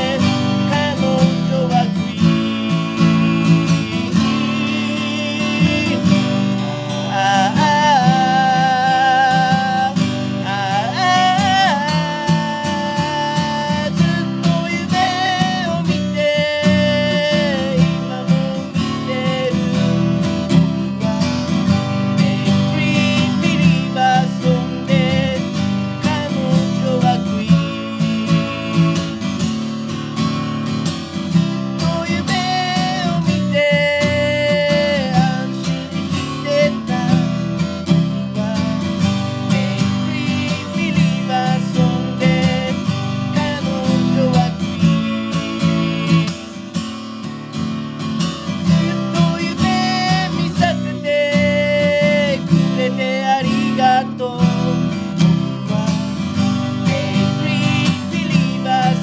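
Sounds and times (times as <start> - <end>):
person singing: 0.0 - 46.6, 48.4 - 59.0
acoustic guitar strumming: 0.0 - 59.0.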